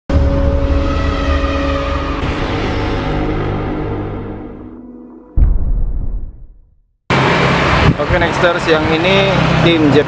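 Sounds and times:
deep rumble: 0.1s - 6.9s.

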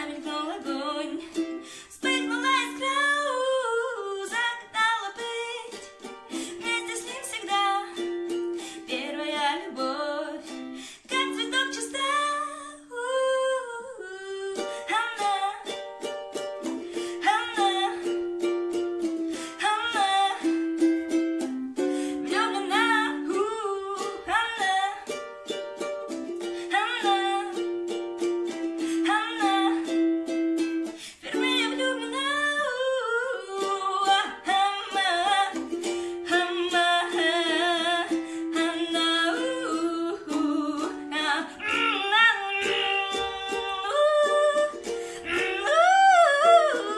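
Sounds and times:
girl singing: 0.0s - 46.9s
ukulele strumming: 0.0s - 46.9s.

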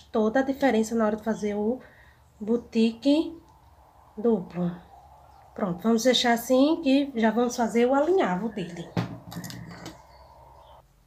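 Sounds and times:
plastic item knocked on tabletop: 9.0s - 9.3s.

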